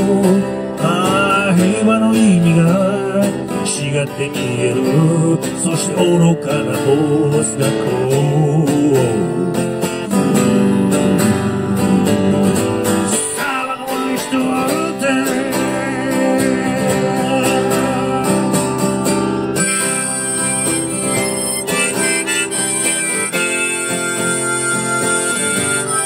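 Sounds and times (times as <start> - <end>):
acoustic guitar strumming: 0.0 - 26.0
harmonica: 0.0 - 26.0.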